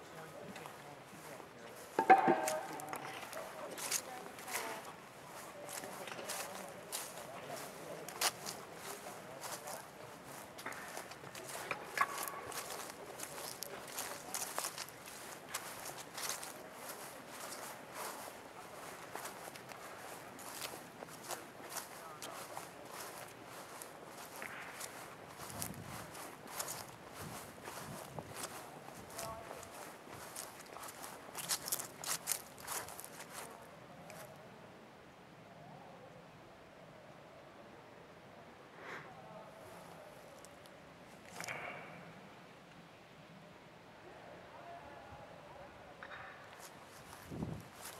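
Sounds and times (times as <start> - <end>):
footsteps on grass: 0.0 - 34.4, 46.5 - 47.9.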